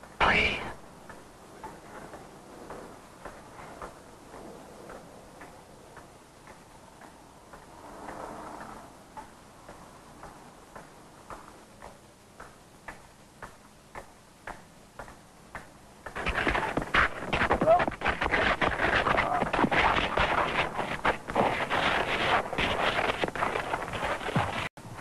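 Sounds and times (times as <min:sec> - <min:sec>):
scuffle with blows: 0:16.0 - 0:25.0
footsteps on pavement: 0:16.1 - 0:24.7.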